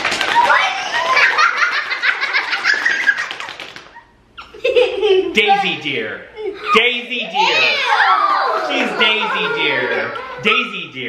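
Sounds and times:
children laughing and squealing: 0:00.3 - 0:05.4, 0:06.4 - 0:10.9.

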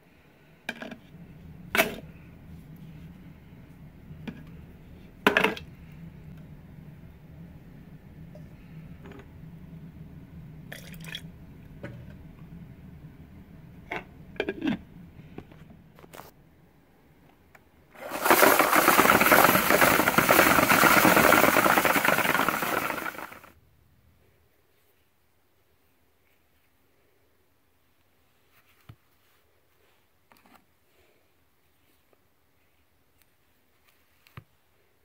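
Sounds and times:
rushing tumbler barrel: 0:18.0 - 0:23.5.

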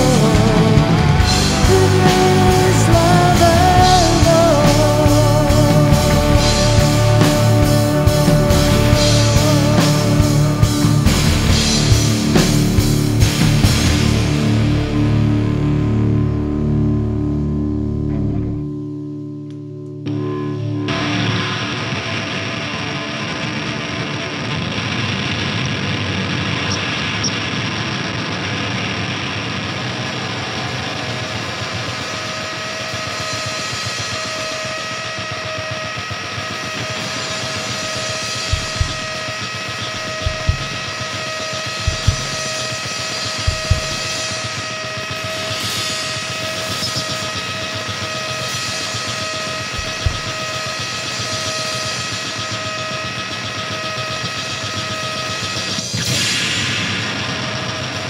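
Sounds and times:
drums: 0:00.0 - 0:18.6, 0:20.8 - 0:58.0
distorted electric guitar: 0:00.0 - 0:58.0
heavy drum hits: 0:38.5 - 0:39.3, 0:40.0 - 0:40.9, 0:41.8 - 0:42.5, 0:43.4 - 0:44.2, 0:49.8 - 0:50.5.

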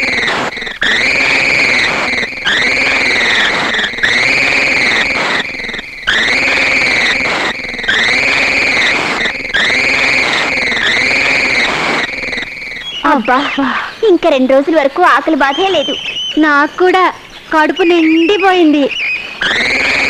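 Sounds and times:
noisy hiss: 0:00.0 - 0:20.0
swooping synthesized tone: 0:00.0 - 0:20.0.

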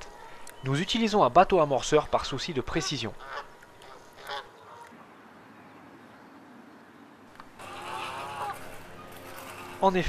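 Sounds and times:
faint outdoor ambience: 0:00.0 - 0:10.0
waterfowl call: 0:02.7 - 0:05.0, 0:07.6 - 0:08.8.

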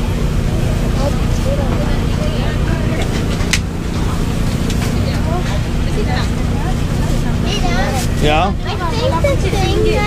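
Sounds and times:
low rumble and hum: 0:00.0 - 0:10.0.

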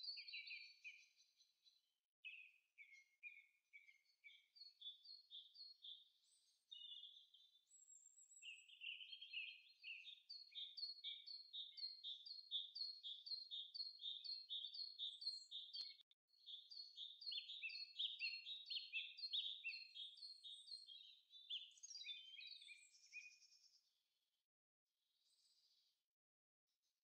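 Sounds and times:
birds chirping: 0:08.4 - 0:23.4.

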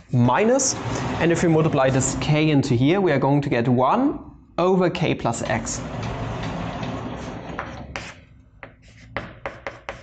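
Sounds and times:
sliding chalkboard panels rumbling: 0:00.5 - 0:02.4, 0:05.4 - 0:08.2.

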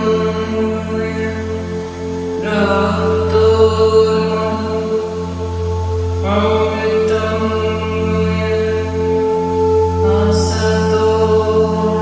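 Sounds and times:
singing bowls ringing: 0:00.0 - 0:12.0
woman chanting: 0:02.4 - 0:12.0.

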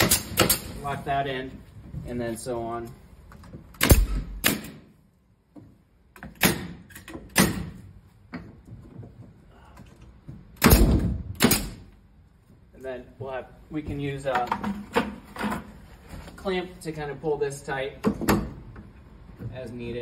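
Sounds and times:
pneumatic nailer firing into wood: 0:00.0 - 0:00.7, 0:03.8 - 0:04.9, 0:06.3 - 0:07.8, 0:10.6 - 0:11.9.

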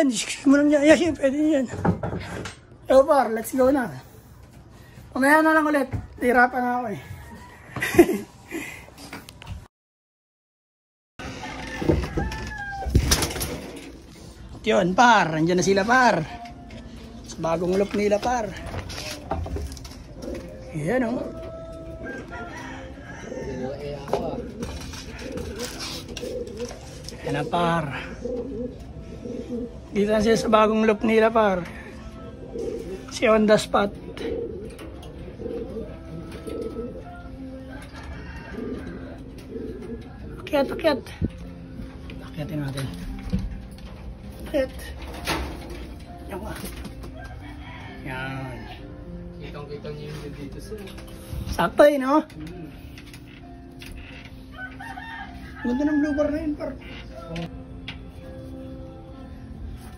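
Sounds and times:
pigeons cooing: 0:15.4 - 0:55.8.

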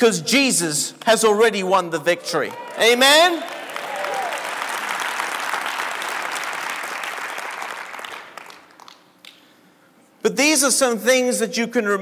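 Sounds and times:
congregation applauding: 0:02.5 - 0:09.4.

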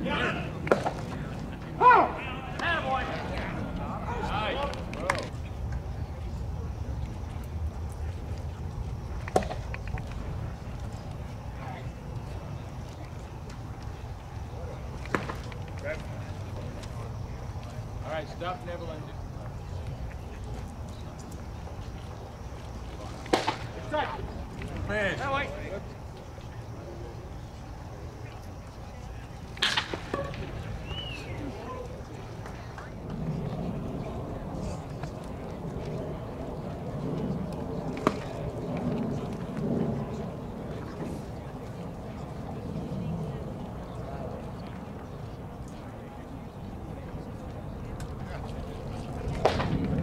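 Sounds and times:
crowd chatter: 0:00.0 - 0:50.0
faint distant voices: 0:00.0 - 0:50.0
bat cracking on baseball: 0:00.6 - 0:01.3, 0:15.0 - 0:16.1, 0:23.2 - 0:24.8, 0:29.5 - 0:31.2, 0:37.5 - 0:39.4, 0:49.2 - 0:50.0
wind rumble on microphone: 0:30.1 - 0:50.0.

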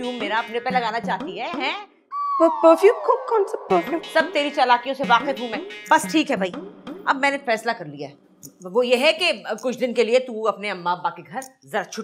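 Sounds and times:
falling whistle glide: 0:02.1 - 0:03.6.

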